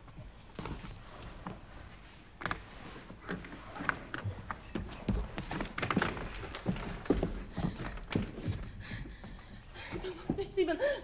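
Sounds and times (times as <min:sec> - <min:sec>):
thumps and scuffs on wooden floor: 0:00.5 - 0:10.6
woman's voice: 0:10.1 - 0:11.0.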